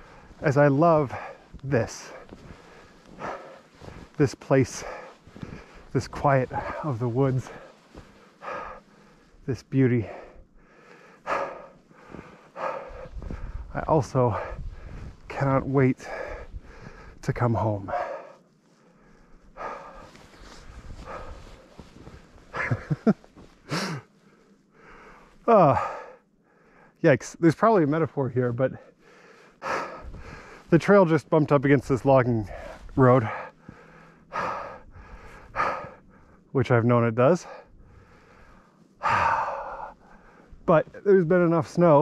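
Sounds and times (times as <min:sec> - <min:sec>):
footsteps in deep snow: 0:00.0 - 0:26.0, 0:27.5 - 0:36.5, 0:37.9 - 0:42.0
man breathing hard: 0:01.0 - 0:15.3, 0:16.0 - 0:27.0, 0:28.9 - 0:30.7, 0:32.5 - 0:36.5, 0:37.4 - 0:40.7
voiced huffs: 0:01.1 - 0:05.9, 0:06.5 - 0:09.4, 0:10.0 - 0:13.7, 0:16.0 - 0:24.2, 0:32.5 - 0:36.4, 0:37.4 - 0:40.6.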